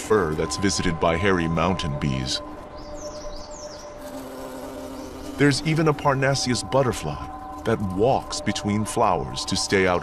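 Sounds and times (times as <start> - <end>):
soft background music: 0.0 - 10.0.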